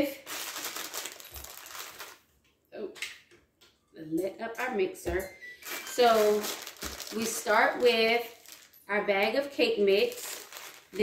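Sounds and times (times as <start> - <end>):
plastic bag crinkling: 0.0 - 2.3, 5.6 - 11.0.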